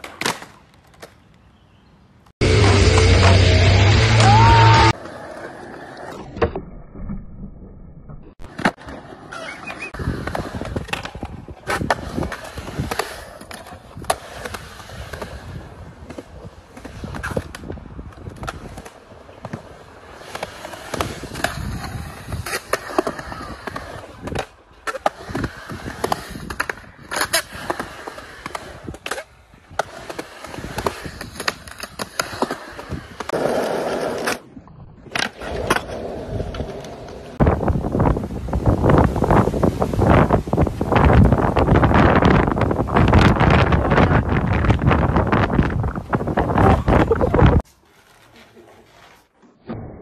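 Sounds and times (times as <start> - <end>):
skateboard wheels rolling on concrete: 0.0 - 50.0
wind buffeting microphone: 37.4 - 47.6.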